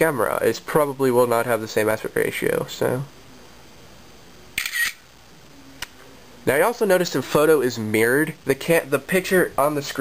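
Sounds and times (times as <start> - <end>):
camera shutter sound: 4.6 - 5.0.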